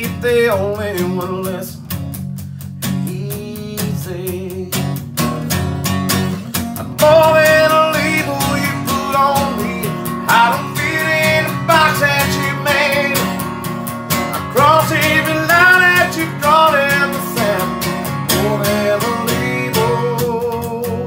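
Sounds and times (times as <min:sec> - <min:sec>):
man singing country song: 0:00.0 - 0:01.9, 0:02.8 - 0:21.0
strummed acoustic guitar: 0:00.0 - 0:21.0.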